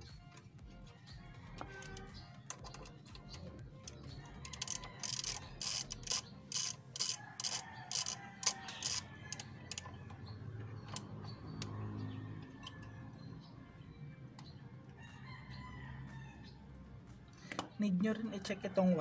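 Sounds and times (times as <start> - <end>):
ratchet wrench strokes: 4.2 - 9.9.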